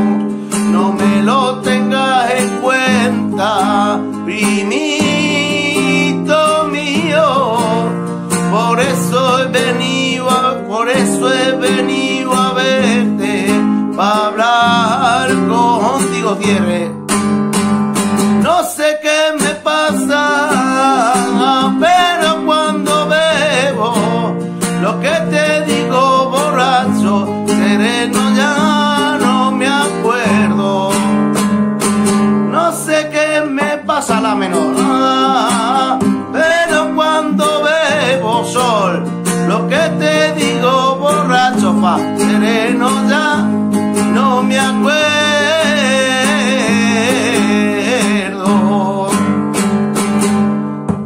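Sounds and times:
man singing: 0.0s - 17.2s, 18.2s - 49.8s
classical guitar strumming: 0.0s - 51.0s.

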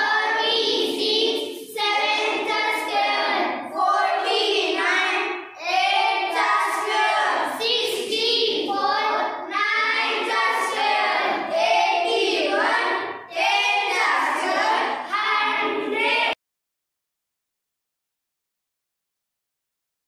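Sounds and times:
children singing in unison: 0.0s - 16.4s.

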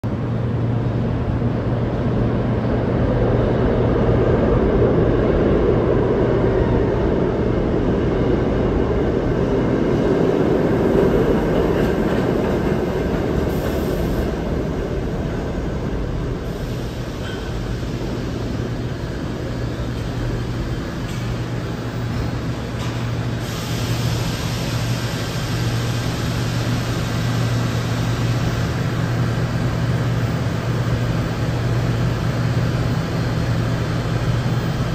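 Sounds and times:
subway train wheels rumbling: 0.0s - 34.9s.

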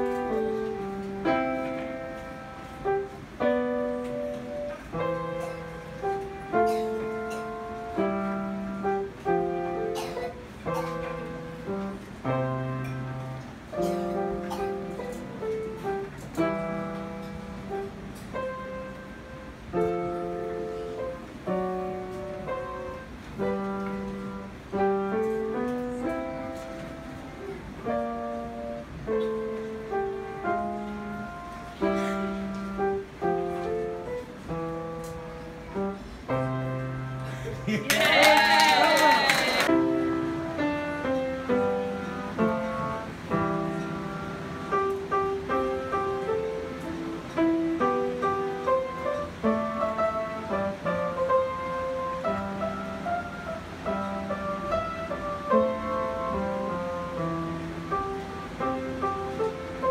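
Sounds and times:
grand piano notes and chords: 0.0s - 37.8s, 39.3s - 59.9s.

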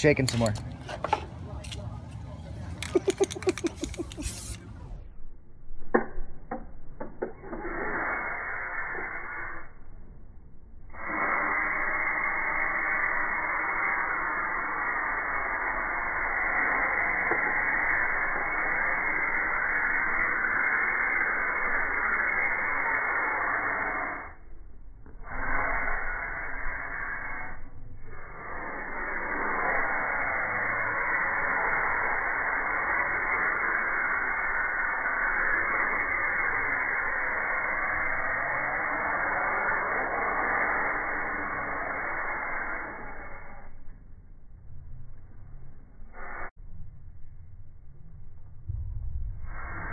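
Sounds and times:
aerosol spray can hissing: 2.8s - 4.7s, 7.4s - 9.5s, 11.0s - 24.2s, 25.3s - 27.6s, 28.3s - 43.6s, 46.2s - 46.5s.

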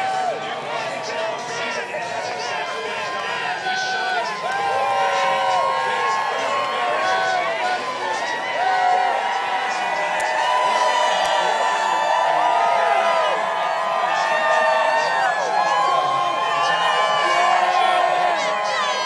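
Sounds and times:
crowd cheering and whooping: 0.0s - 19.0s.

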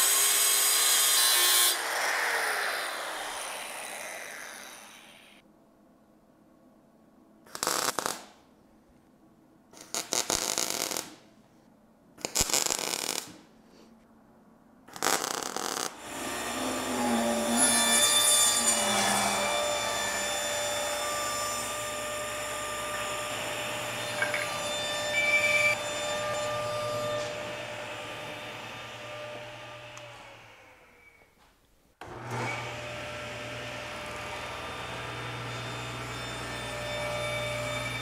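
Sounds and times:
table saw cutting wood: 0.0s - 5.4s, 16.0s - 31.0s, 32.0s - 38.0s.

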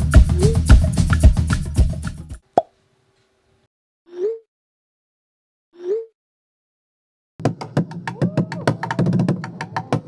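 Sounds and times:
drum music: 0.0s - 2.4s.

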